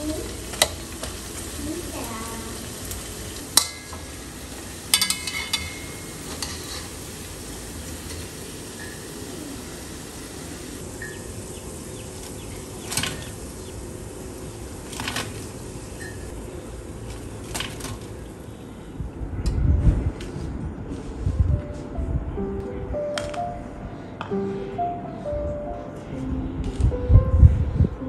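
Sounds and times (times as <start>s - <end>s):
food deep-frying in oil: 0.0s - 18.5s
mesh skimmer clinking on pan: 3.5s - 4.2s, 4.9s - 6.9s.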